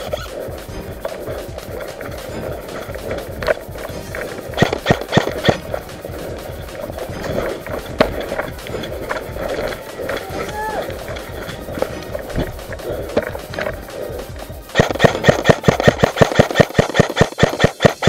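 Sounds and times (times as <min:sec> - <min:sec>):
airsoft rifle rapid shots: 0:00.0 - 0:18.0
running footsteps: 0:00.0 - 0:18.0.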